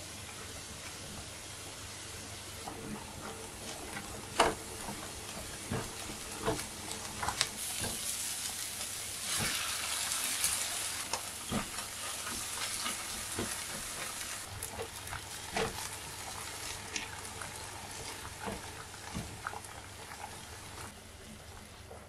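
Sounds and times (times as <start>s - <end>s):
vegetables sizzling in a frying pan: 0.0s - 21.8s
spatula stirring and scraping: 2.7s - 20.9s.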